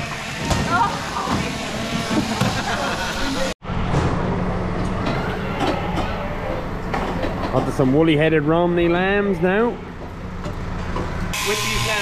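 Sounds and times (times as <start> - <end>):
electric shearing machines running: 0.0 - 3.6, 11.3 - 12.0.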